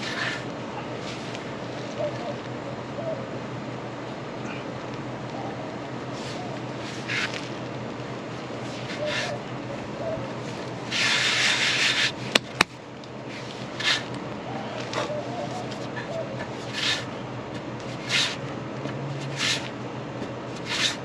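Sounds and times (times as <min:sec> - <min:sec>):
hand rubbing on wooden board: 0:00.0 - 0:01.4, 0:06.1 - 0:07.5, 0:08.5 - 0:09.4, 0:10.5 - 0:12.4, 0:15.0 - 0:17.1, 0:19.2 - 0:19.7, 0:20.5 - 0:21.0.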